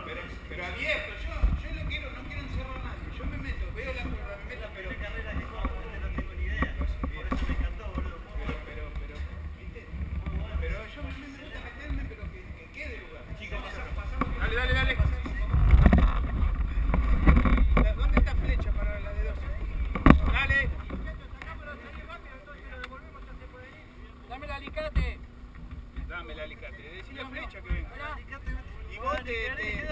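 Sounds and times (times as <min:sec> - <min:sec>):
people talking indistinctly: 0:00.0 - 0:29.9
steady low rumble: 0:00.0 - 0:29.9.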